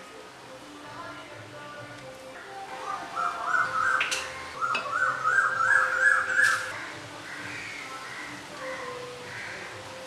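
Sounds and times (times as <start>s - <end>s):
bird calling: 2.4s - 9.7s.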